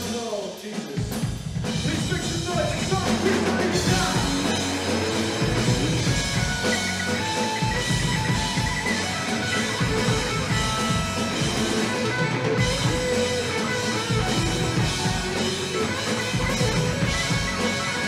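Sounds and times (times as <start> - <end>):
drum kit: 0.0 - 18.0
bass guitar: 1.4 - 18.0
electric guitars: 1.6 - 18.0.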